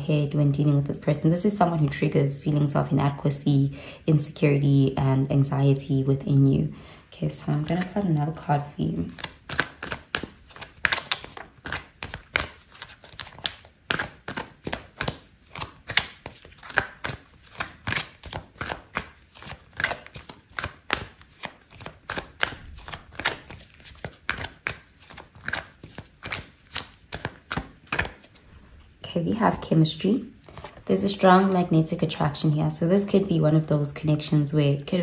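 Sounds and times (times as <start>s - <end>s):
cards being shuffled: 7.5s - 8.1s, 9.0s - 29.0s, 30.4s - 31.0s.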